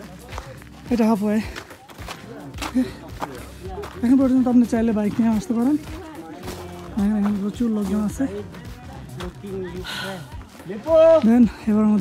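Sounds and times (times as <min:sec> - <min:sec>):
footsteps on dirt path: 0:00.0 - 0:12.0
people talking in low tones: 0:00.0 - 0:12.0.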